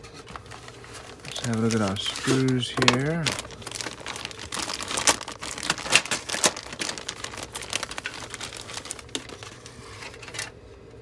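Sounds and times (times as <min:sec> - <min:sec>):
plastic bag crinkling: 0:00.2 - 0:10.5.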